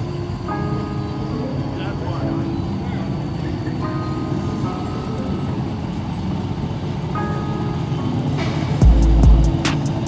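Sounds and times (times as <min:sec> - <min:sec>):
crowd voices: 0:00.0 - 0:08.8
car engines rumbling: 0:00.0 - 0:10.0.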